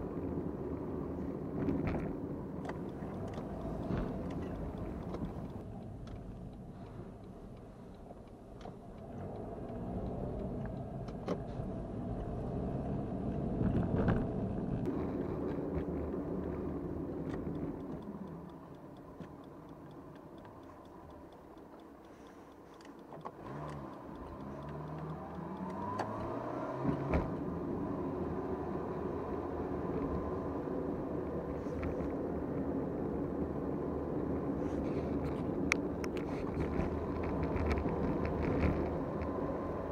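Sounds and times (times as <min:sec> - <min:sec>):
car engine and road noise: 0:00.0 - 0:39.9
sharp clicks in car cabin: 0:01.6 - 0:06.3.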